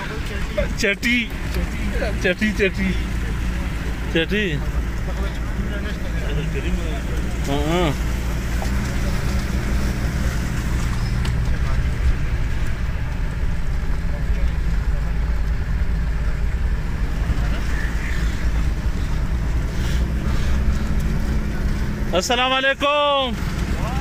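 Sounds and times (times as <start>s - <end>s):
car engine droning: 0.0s - 24.0s.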